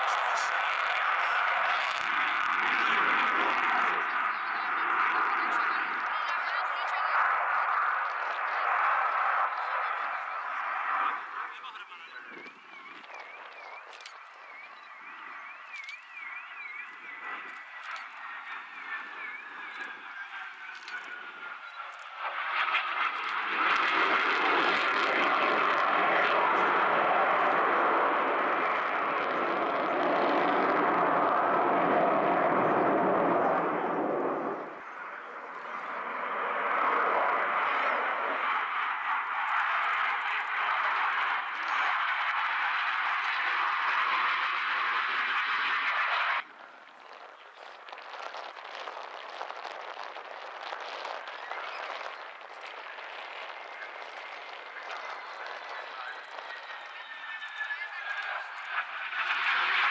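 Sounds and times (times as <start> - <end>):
faint falling jet whine: 0.0 - 59.9
jet engine noise: 0.0 - 59.9.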